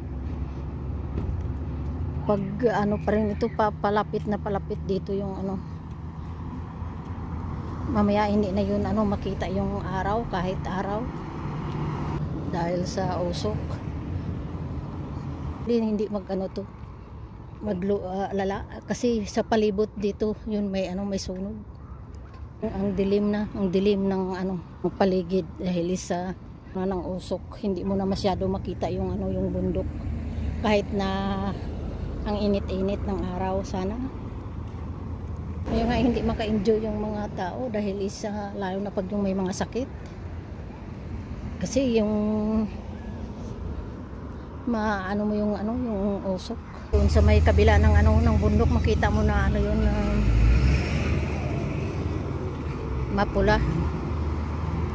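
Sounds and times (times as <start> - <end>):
low rumble of road traffic: 0.0 - 54.9
woman speaking: 2.2 - 5.7, 7.8 - 11.2, 12.4 - 13.9, 15.6 - 16.7, 17.6 - 21.7, 22.6 - 29.9, 30.6 - 34.2, 35.7 - 39.9, 41.6 - 42.8, 44.6 - 50.3, 53.1 - 54.0
car driving past: 11.0 - 12.4, 46.9 - 54.9.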